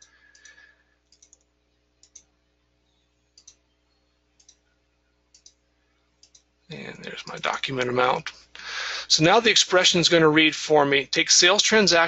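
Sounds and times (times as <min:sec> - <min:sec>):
computer mouse clicking: 0:00.0 - 0:02.3, 0:03.4 - 0:03.7, 0:04.4 - 0:04.7, 0:05.3 - 0:05.6, 0:06.2 - 0:06.5.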